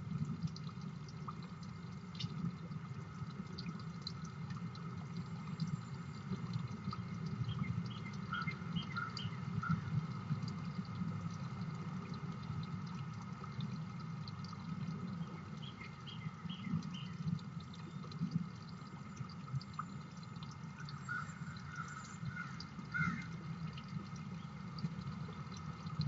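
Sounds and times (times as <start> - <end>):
small birds chirping: 15.2 - 17.2.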